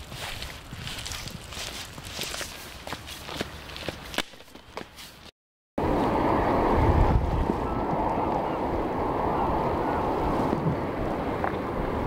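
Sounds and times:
footsteps on gravel: 0:00.0 - 0:05.3.

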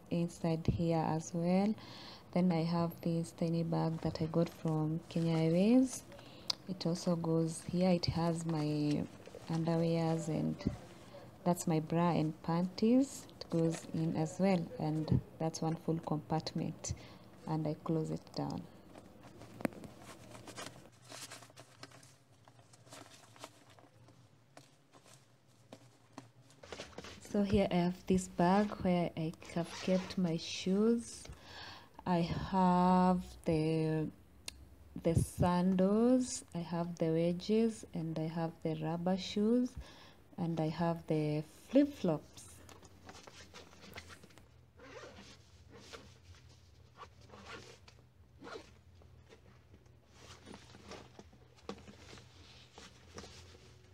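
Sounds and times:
rustling of backpack: 0:07.2 - 0:11.4, 0:18.8 - 0:27.6, 0:42.7 - 0:53.9
zipper being pulled shut: 0:29.5 - 0:30.2, 0:44.8 - 0:46.1, 0:47.0 - 0:48.8.

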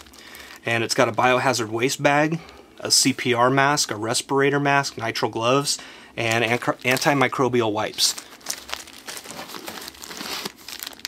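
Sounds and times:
plastic pouch crinkling: 0:06.2 - 0:11.0.

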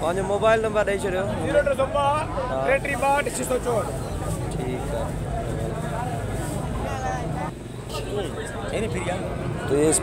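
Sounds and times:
men talking in a crowd: 0:00.0 - 0:10.0.

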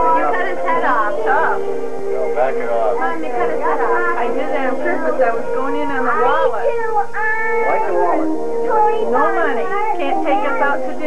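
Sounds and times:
overlapping voices: 0:00.0 - 0:06.4
background music with held notes: 0:00.0 - 0:11.0.

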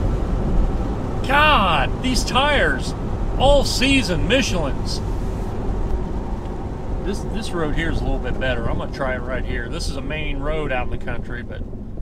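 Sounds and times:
car engine drone: 0:00.0 - 0:12.0
tyre noise on wet road: 0:00.0 - 0:12.0.

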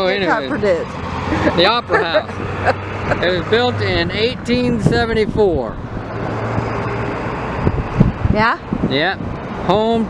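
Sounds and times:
car engine hum: 0:00.0 - 0:10.0
road rush: 0:00.0 - 0:10.0.

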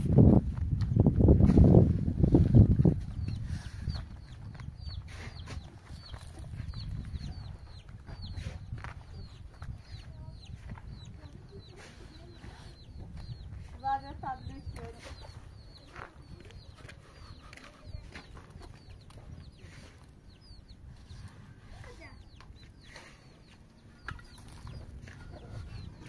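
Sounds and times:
chicks peeping: 0:00.8 - 0:26.0.

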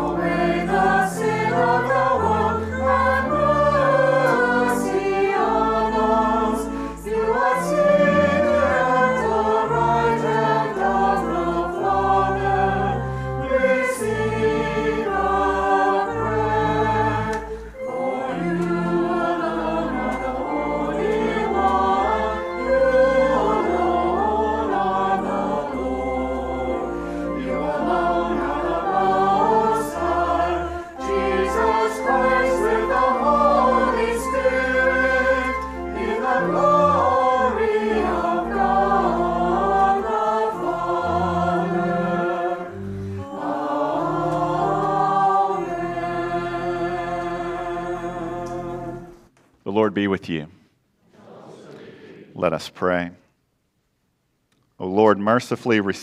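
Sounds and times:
choir singing a hymn: 0:00.0 - 0:49.3, 0:51.0 - 0:52.4.

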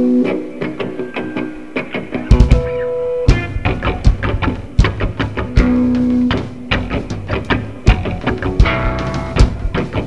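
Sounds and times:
rock band playing live: 0:00.0 - 0:10.0
drum hits: 0:02.3 - 0:10.0.

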